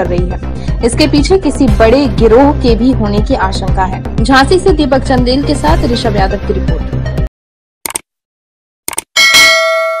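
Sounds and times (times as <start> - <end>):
quick clicks: 7.8 - 8.1, 8.9 - 9.1
bell-like ding: 9.2 - 10.0.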